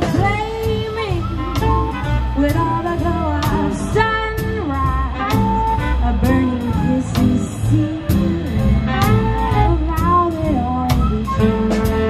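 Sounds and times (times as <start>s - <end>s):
bending melody line: 0.0s - 12.0s
drum kit and cymbals: 0.0s - 12.0s.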